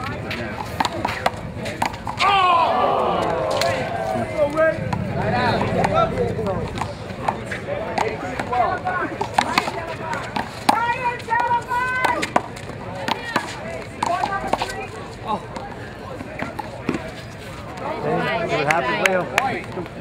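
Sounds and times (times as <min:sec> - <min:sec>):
person shouting: 0:02.2 - 0:03.2.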